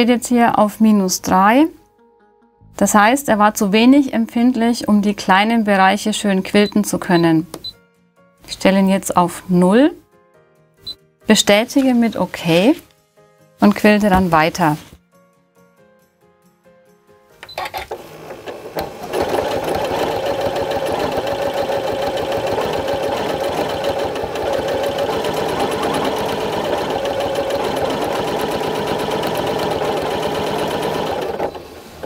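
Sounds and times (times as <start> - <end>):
sewing machine stitching: 17.5 - 32.0.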